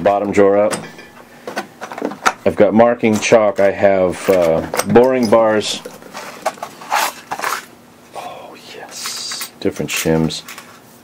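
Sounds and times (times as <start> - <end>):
metal tools clinking in drawer: 0.7 - 1.2, 4.1 - 6.7.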